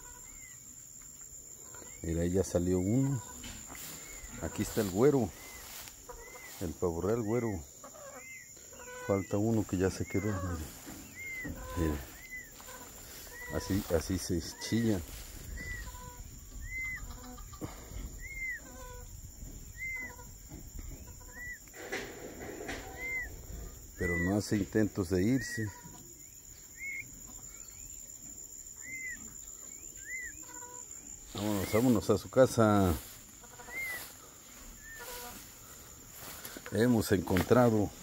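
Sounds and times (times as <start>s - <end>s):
turkey chick peeping: 0.0s - 2.0s, 2.7s - 24.4s, 25.1s - 36.8s
high insect drone: 0.0s - 38.0s.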